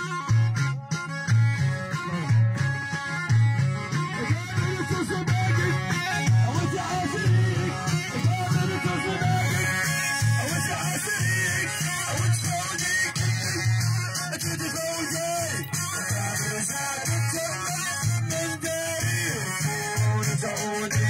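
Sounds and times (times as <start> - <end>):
plucked string instrument: 0.0 - 21.0
deep repeating beat: 0.1 - 14.6
voices singing: 4.0 - 14.4.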